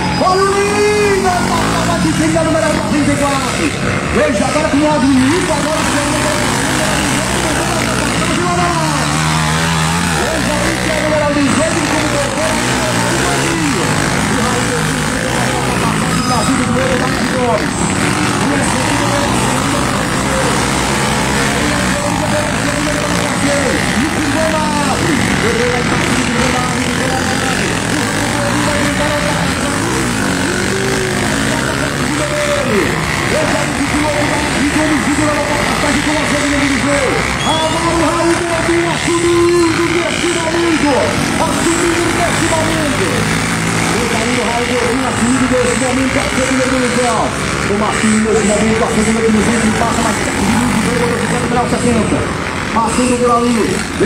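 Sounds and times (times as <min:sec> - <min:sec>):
dirt bike engines revving: 0:00.0 - 0:54.0
indistinct voices: 0:00.0 - 0:54.0.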